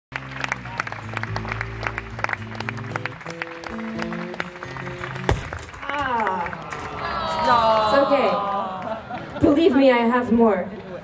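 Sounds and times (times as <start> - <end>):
sharp loud snap: 5.3 - 5.8.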